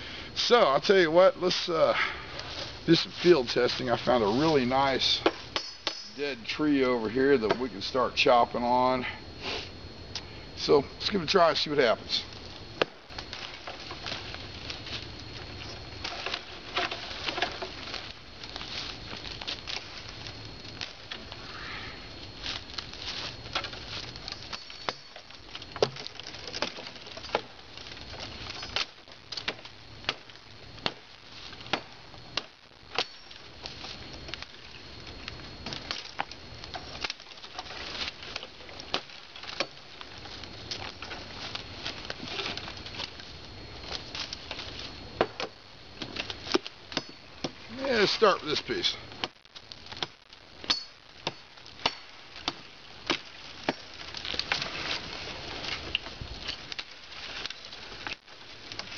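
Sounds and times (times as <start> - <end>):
footsteps crunching through leaves: 2.5 - 5.2, 13.2 - 20.3, 22.3 - 24.2
twigs snapping: 22.3 - 47.9, 49.1 - 58.9.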